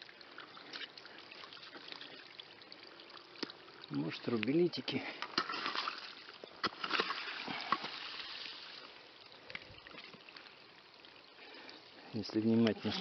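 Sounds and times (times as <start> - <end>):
water trickling over gravel: 0.0 - 13.0.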